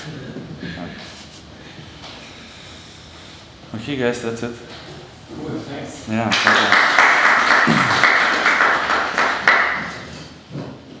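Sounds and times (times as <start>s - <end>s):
audience applause: 6.3s - 10.0s.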